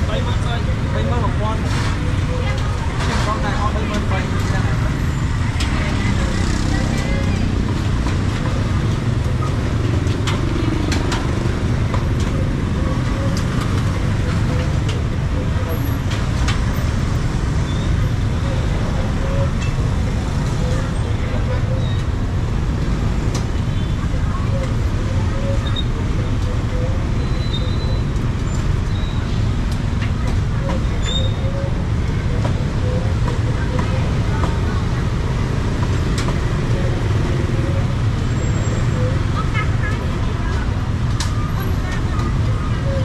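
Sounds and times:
people talking: 0:00.0 - 0:09.8, 0:10.5 - 0:16.0, 0:18.4 - 0:22.1, 0:23.7 - 0:28.0, 0:30.0 - 0:43.0
road traffic rumble: 0:00.0 - 0:43.0.

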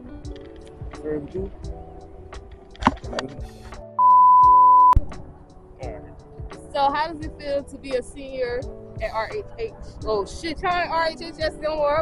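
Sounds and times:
background music: 0:00.0 - 0:12.0
electronic beep: 0:04.0 - 0:05.0.

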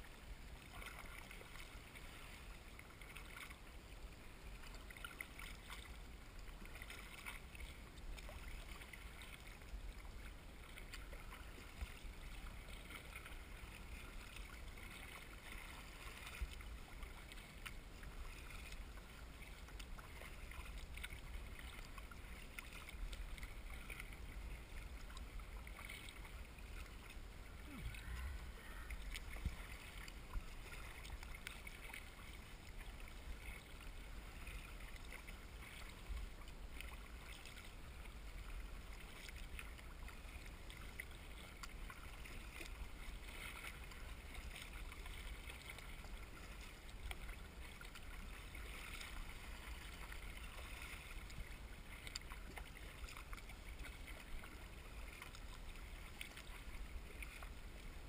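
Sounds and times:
water splashing against hull: 0:00.0 - 0:58.0.

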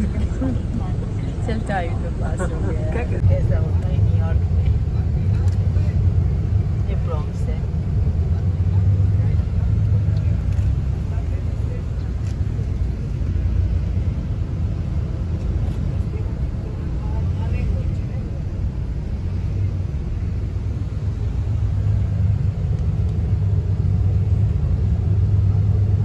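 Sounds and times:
bus engine and road rumble: 0:00.0 - 0:26.0.

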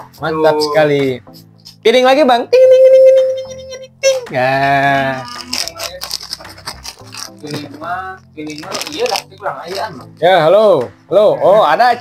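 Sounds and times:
plastic snack packet crackling: 0:05.1 - 0:10.3.

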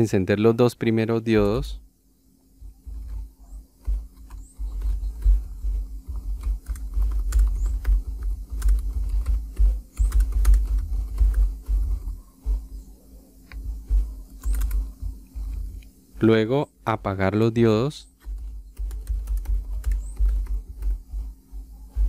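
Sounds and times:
faint steady hum: 0:00.0 - 0:22.0
keyboard typing: 0:02.6 - 0:12.2, 0:13.6 - 0:15.6, 0:18.2 - 0:21.3.

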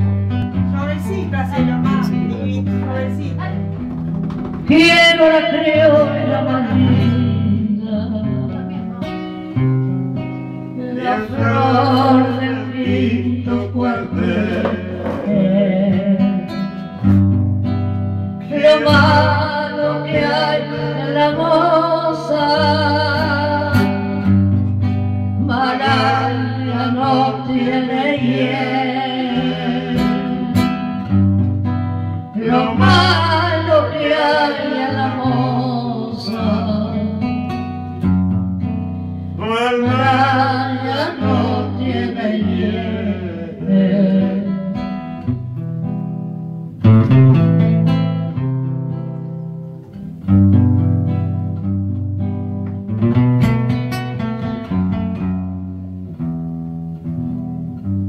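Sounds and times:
acoustic guitar plucked: 0:00.0 - 0:58.0
woman singing: 0:04.6 - 0:09.2, 0:10.8 - 0:16.8, 0:18.4 - 0:24.2, 0:25.4 - 0:30.8, 0:32.3 - 0:37.5, 0:39.4 - 0:44.8.

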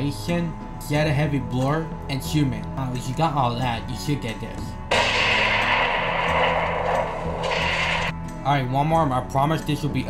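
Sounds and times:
explosion with rushing noise: 0:04.9 - 0:08.1.

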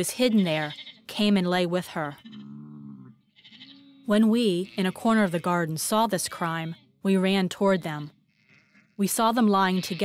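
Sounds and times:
sheep bleating: 0:00.0 - 0:01.3, 0:01.9 - 0:06.8, 0:07.8 - 0:10.0.

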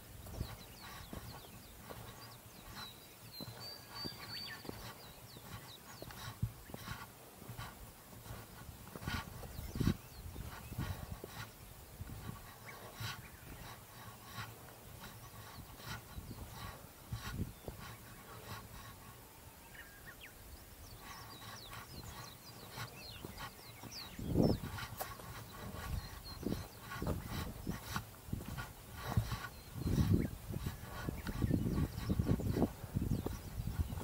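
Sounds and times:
footsteps on dirt trail: 0:00.0 - 0:34.0.

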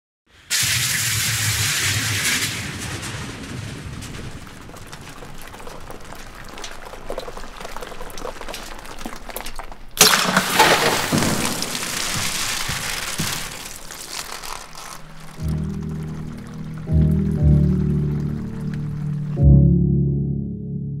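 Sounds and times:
rushing hiss with low rumble: 0:00.3 - 0:07.2
fizzing crackle: 0:00.3 - 0:19.4.

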